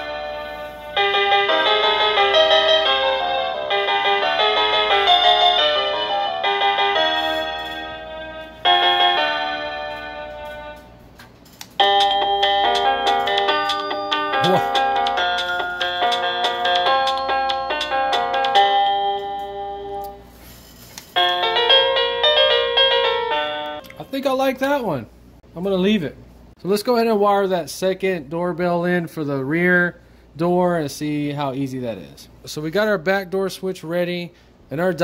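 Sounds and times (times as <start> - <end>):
electronic doorbell chime melody: 0.0 - 10.9, 11.8 - 20.4, 21.1 - 23.9.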